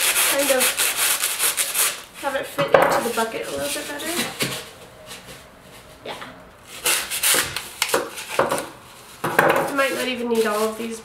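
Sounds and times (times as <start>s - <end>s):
foam blocks scraping plastic pot: 9.2s - 11.0s.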